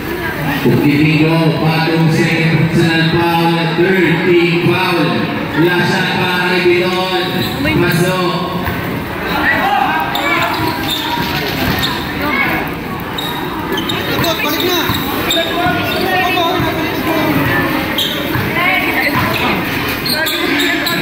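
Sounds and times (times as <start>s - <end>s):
spectators talking and shouting: 0.0s - 21.0s
basketball bouncing on court: 7.3s - 9.1s, 10.0s - 21.0s.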